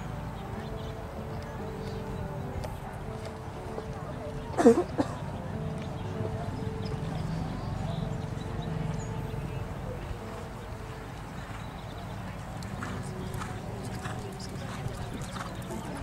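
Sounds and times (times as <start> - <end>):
horse hoofbeats: 0.0 - 16.0.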